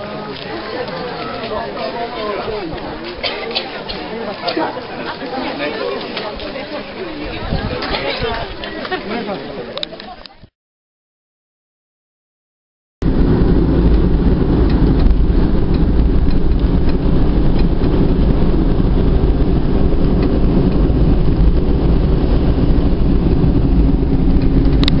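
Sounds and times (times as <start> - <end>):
car engine and road noise: 13.0 - 25.0.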